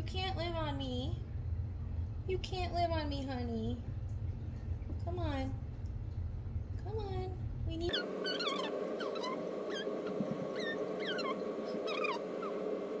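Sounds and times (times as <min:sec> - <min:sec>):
steady background hum: 0:00.0 - 0:13.0
animal high-pitched falling cries: 0:07.9 - 0:12.6.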